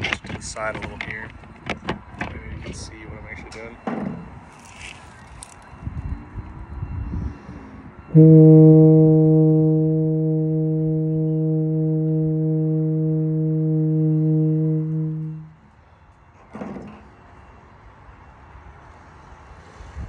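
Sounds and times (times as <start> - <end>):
tuba sustained note: 8.1 - 15.6.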